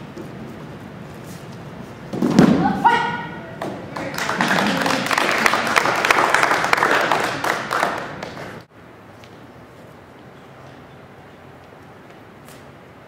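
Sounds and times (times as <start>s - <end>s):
short shout: 2.6s - 3.6s
applause: 3.9s - 8.6s.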